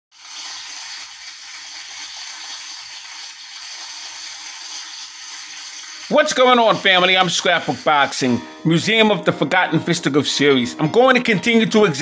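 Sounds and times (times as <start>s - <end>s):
steady rushing hiss: 0.2s - 8.6s.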